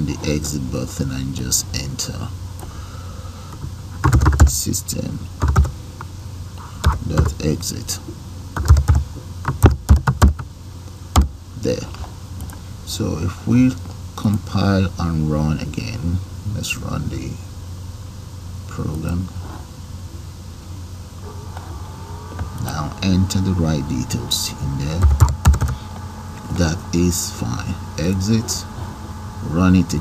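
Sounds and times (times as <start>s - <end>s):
low background hum: 0.0s - 30.0s
computer keyboard keystrokes: 4.0s - 4.5s, 8.6s - 10.4s, 25.0s - 25.7s
man's voice: 22.5s - 25.2s, 26.4s - 28.7s, 29.4s - 30.0s.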